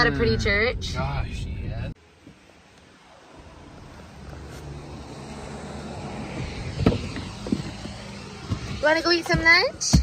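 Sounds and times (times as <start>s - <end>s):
car engine and road rumble: 0.0s - 10.0s
sharp thump: 6.7s - 10.0s.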